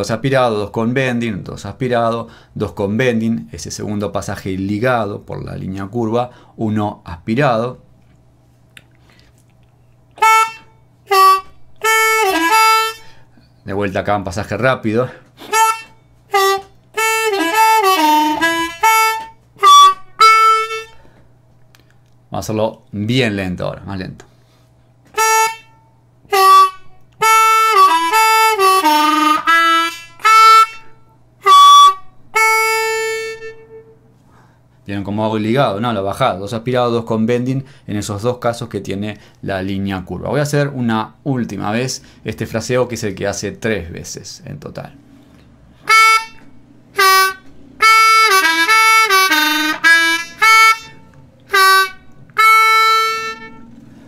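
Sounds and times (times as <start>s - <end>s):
harmonica playing blues: 10.1s - 21.2s, 24.4s - 34.5s, 45.8s - 54.0s.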